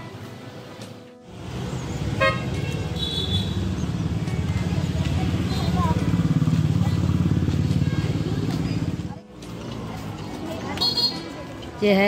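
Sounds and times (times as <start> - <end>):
street noise: 0.0 - 12.0
motor vehicle engine rumbling: 1.2 - 11.8.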